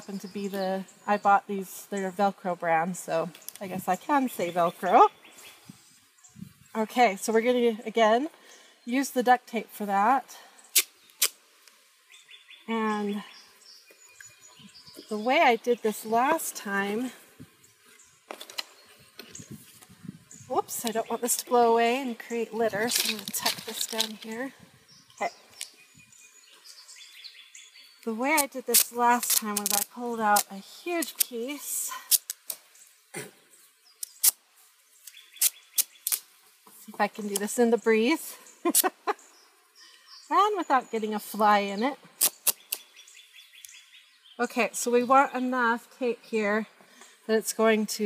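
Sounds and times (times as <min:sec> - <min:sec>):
sketch pad and tape handling clicks: 0:28.4 - 0:31.4, 0:34.0 - 0:34.4.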